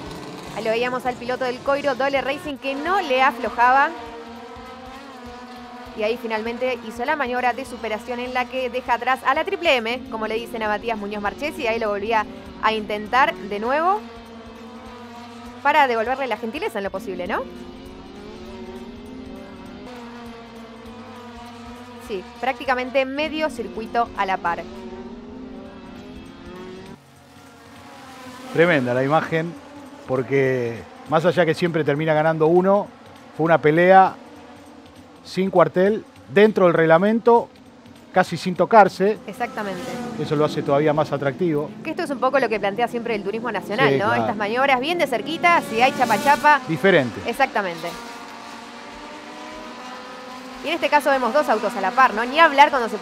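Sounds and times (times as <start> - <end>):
racing car engines: 0.0 - 53.0.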